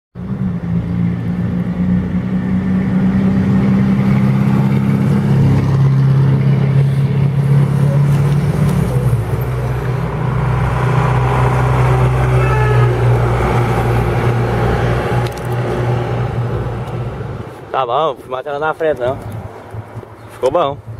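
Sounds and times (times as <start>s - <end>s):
truck engine running under power: 3.5s - 17.5s.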